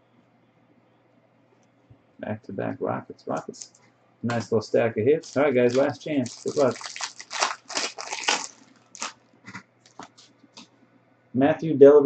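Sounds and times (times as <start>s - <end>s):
cards rustling: 3.4s - 10.7s
foil wrapper crinkling: 5.2s - 10.6s.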